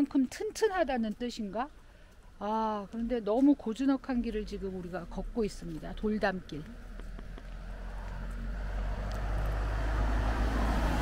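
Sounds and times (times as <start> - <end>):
car engine approaching: 4.2 - 11.0.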